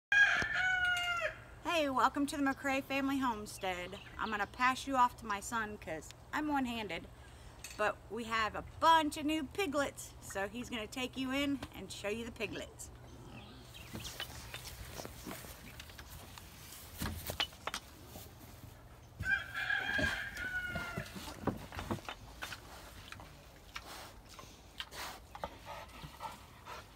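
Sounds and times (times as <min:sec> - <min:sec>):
rooster crowing: 0:00.1 - 0:01.5, 0:19.2 - 0:21.2.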